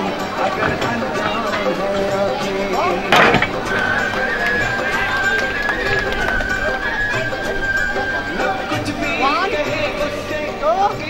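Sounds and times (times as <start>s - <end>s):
background voices: 0.0s - 11.0s
loud crash of smashed material: 0.2s - 6.1s.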